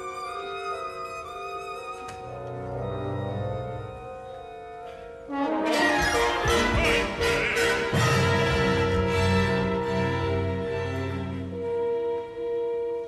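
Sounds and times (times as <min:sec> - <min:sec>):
orchestral music: 0:00.0 - 0:13.0.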